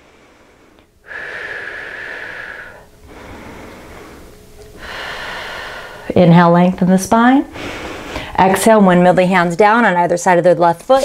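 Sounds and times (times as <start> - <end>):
woman breathing slowly: 0.0 - 6.2, 7.5 - 8.4.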